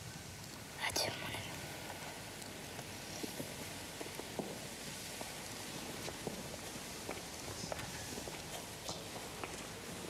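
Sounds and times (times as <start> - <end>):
faint background hiss: 0.0 - 10.0
girl whispering: 0.8 - 1.6.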